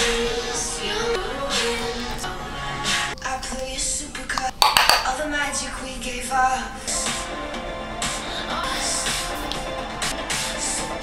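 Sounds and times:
makeup items clicking: 4.3 - 5.2.

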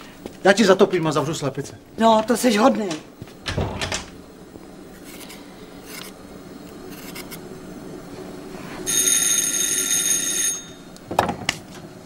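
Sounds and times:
electric doorbell ringing: 8.9 - 11.0.

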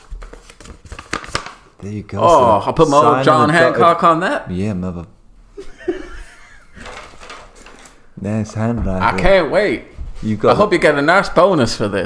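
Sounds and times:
paper rustling and crinkling: 0.0 - 1.7.

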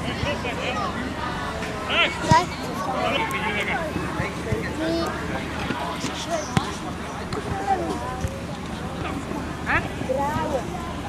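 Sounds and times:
players and spectators calling: 0.0 - 11.0.

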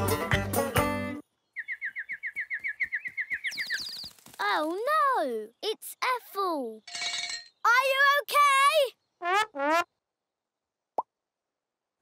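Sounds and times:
cartoon birds chirping: 1.5 - 6.9.

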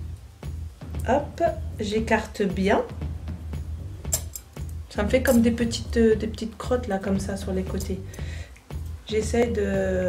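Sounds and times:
music with low beat: 0.0 - 10.0.

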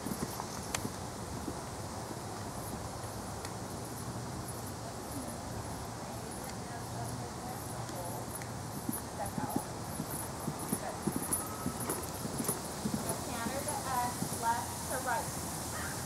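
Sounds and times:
horse hoofbeats on sand: 0.0 - 1.7, 6.3 - 15.3.

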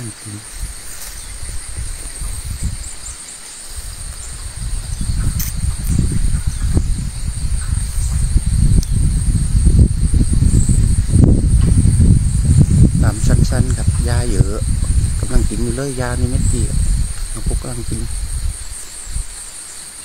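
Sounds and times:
low rumbling noise: 0.0 - 19.4
insects droning: 0.0 - 20.0.

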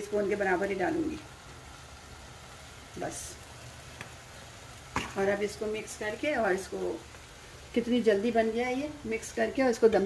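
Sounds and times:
tomatoes sizzling in a frying pan: 0.0 - 10.0.

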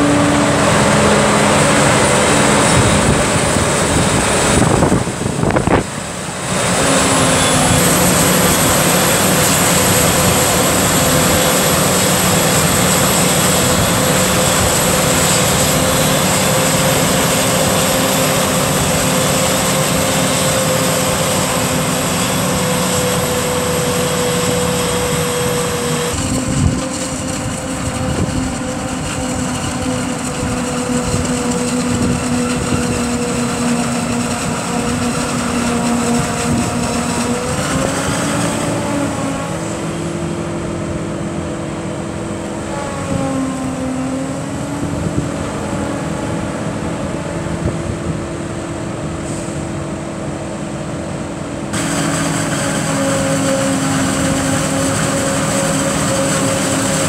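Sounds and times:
forage harvester droning: 0.0 - 57.0
tractor engine: 0.0 - 57.0.

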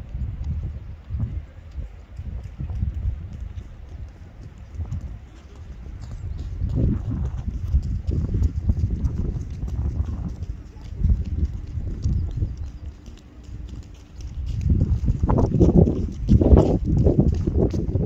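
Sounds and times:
low rumble: 0.0 - 18.0
running footsteps on track: 0.0 - 18.0.

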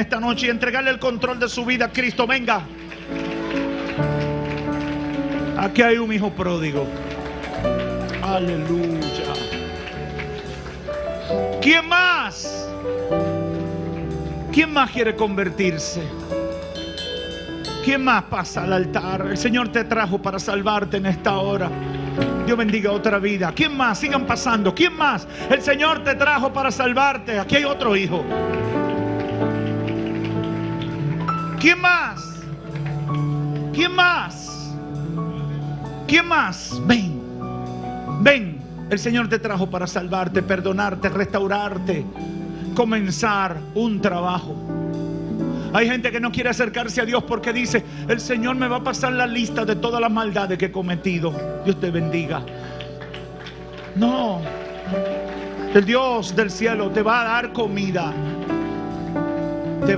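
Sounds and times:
soft music of sustained chords: 0.0 - 59.9.

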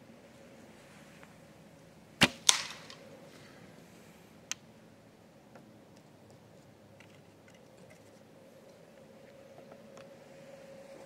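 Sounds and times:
arrow cracking into ground: 2.2 - 3.0
bowstring snap: 2.2 - 3.0.

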